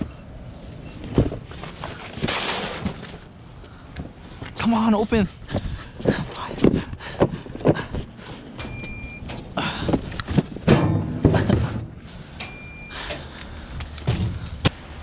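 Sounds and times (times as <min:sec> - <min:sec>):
metal compartment doors clunking: 0:08.4 - 0:13.3, 0:14.0 - 0:14.7
kiosk beeping: 0:08.6 - 0:09.5, 0:12.4 - 0:13.2.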